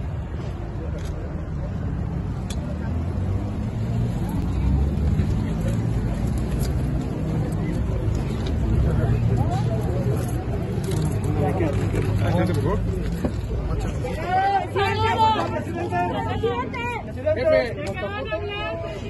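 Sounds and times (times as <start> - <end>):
crowd talking and calling out: 0.0 - 19.0
street traffic: 0.0 - 19.0.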